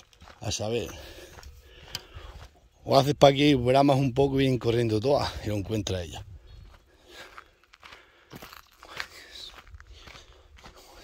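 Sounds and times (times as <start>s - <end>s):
footsteps on dirt: 0.0s - 11.0s.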